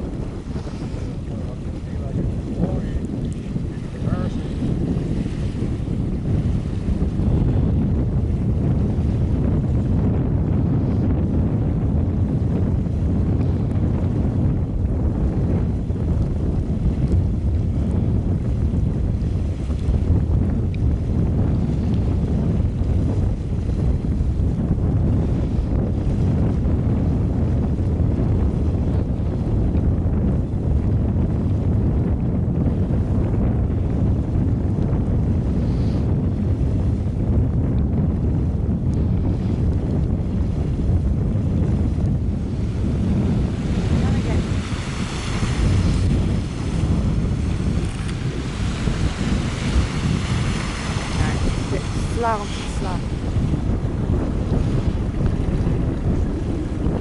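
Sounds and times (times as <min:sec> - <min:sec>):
wind buffeting microphone: 0:00.0 - 0:57.0.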